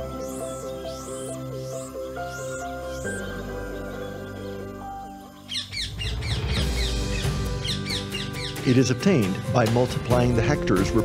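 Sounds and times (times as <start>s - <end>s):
birdsong chirps: 0.0s - 9.3s
background music: 0.0s - 11.0s.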